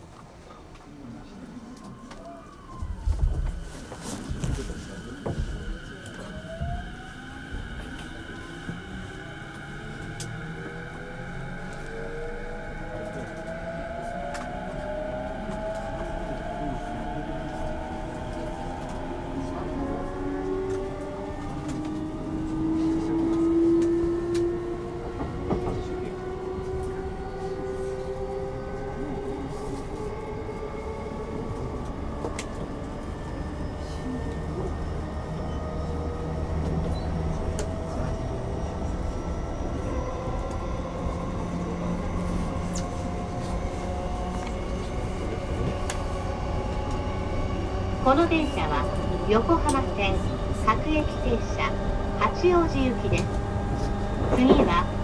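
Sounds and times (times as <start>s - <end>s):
low train rumble: 0.0s - 55.0s.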